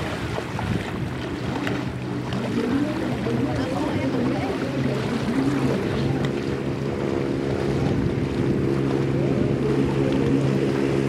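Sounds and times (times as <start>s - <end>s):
legs wading through water: 0.0s - 11.0s
wind buffeting microphone: 0.0s - 11.0s.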